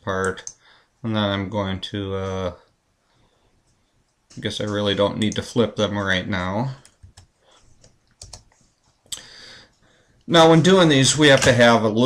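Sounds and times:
soft hiss: 0:00.0 - 0:12.0
keyboard and mouse clicks: 0:06.8 - 0:08.7.

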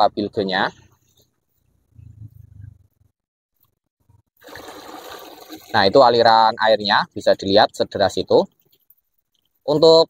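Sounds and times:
water gushing into plastic bucket: 0:04.4 - 0:06.2.

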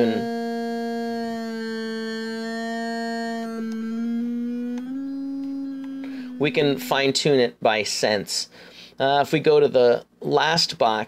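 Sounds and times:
held sung note: 0:00.0 - 0:07.4.

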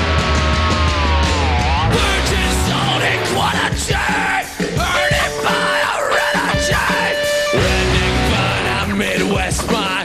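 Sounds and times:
metal band playing: 0:00.0 - 0:10.0
man yelling vocals: 0:01.9 - 0:10.0.

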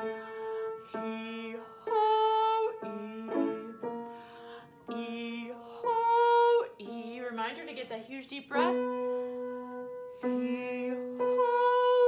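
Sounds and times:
upright piano notes: 0:00.0 - 0:12.0
woman singing vocal exercise: 0:00.9 - 0:03.9, 0:04.8 - 0:07.8, 0:10.2 - 0:12.0.

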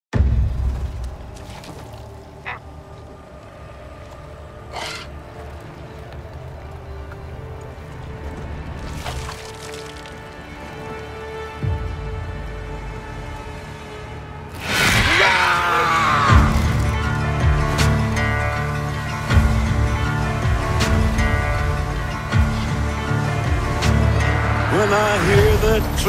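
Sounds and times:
low film score drone: 0:00.2 - 0:26.0
harsh bird squawks: 0:02.4 - 0:02.7.

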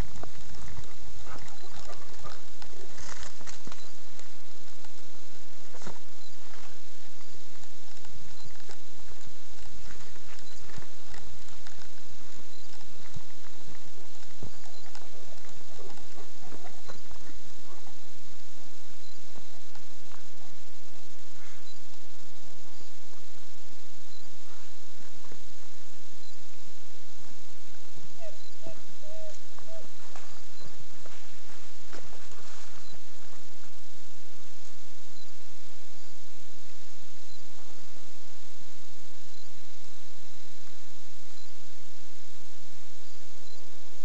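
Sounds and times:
footsteps on dirt trail: 0:00.0 - 0:18.1, 0:27.7 - 0:34.8.

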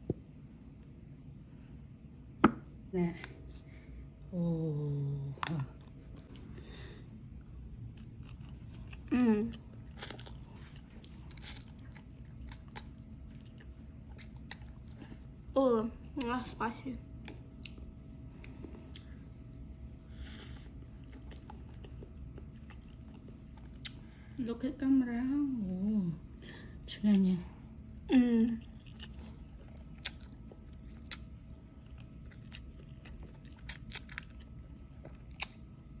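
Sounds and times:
person chewing noodles: 0:05.4 - 0:15.5, 0:17.2 - 0:19.4, 0:20.1 - 0:24.2, 0:27.9 - 0:36.0
person slurping and chewing noodles: 0:09.8 - 0:15.2
wet mouth clicks and smacks: 0:23.7 - 0:24.0, 0:31.0 - 0:31.3.

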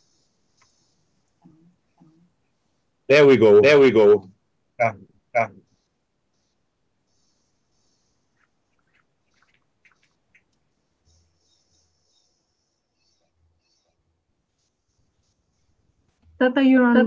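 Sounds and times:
man saying yeah: 0:04.8 - 0:05.5.

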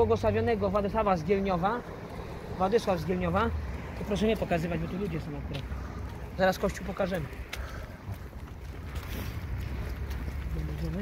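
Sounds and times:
wind buffeting microphone: 0:01.3 - 0:11.0.

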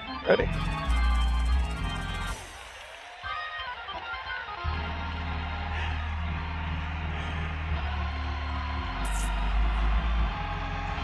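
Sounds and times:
sustained keyboard chords: 0:00.0 - 0:02.8
deep held bass notes: 0:00.4 - 0:02.4.

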